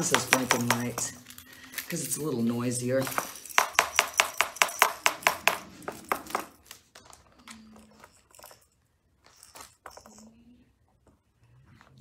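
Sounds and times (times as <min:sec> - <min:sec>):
toy watch tapping on plastic: 0:00.0 - 0:01.2, 0:03.0 - 0:06.6.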